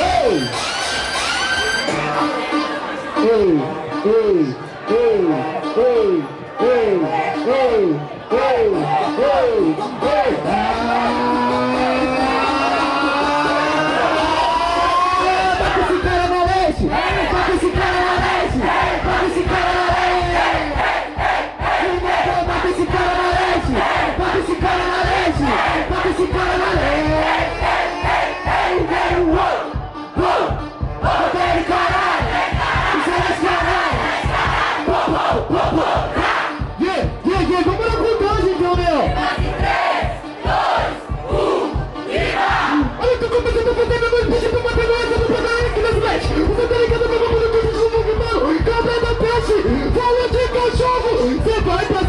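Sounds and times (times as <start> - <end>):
crowd shouting and chanting: 0.0 - 52.0.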